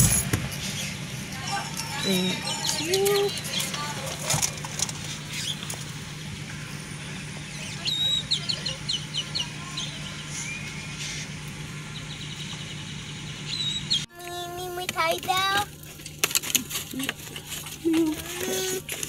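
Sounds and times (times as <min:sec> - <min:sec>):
car engine idling: 0:00.0 - 0:19.0
high bird-like chirps: 0:06.7 - 0:14.1.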